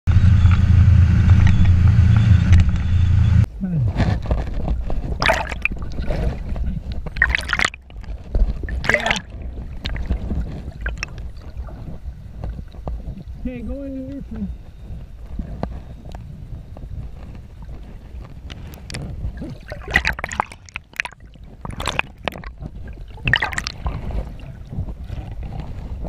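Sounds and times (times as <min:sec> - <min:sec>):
motorboat engine rumble: 0:00.1 - 0:26.0
wind on microphone: 0:03.4 - 0:26.0
underwater gurgling and sloshing: 0:03.9 - 0:26.0
water splashing: 0:05.0 - 0:12.0, 0:18.5 - 0:26.0.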